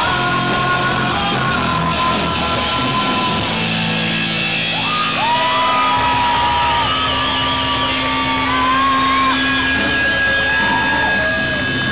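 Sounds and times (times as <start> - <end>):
live rock band playing: 0.0 - 11.9
voices whooping and shouting: 4.7 - 11.9.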